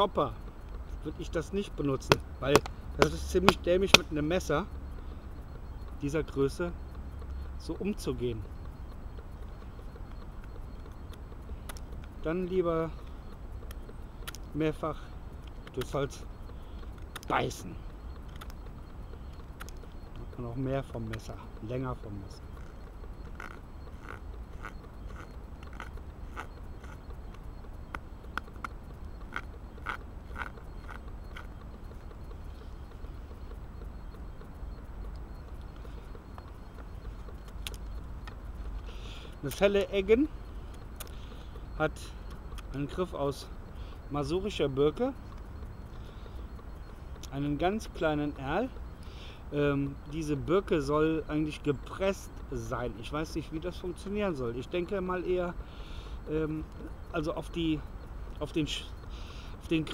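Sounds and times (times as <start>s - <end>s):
low background rumble: 0.0s - 59.9s.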